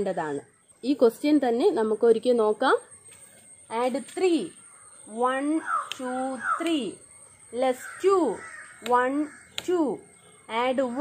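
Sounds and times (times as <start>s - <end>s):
crow cawing: 4.6s - 6.8s, 7.6s - 10.4s.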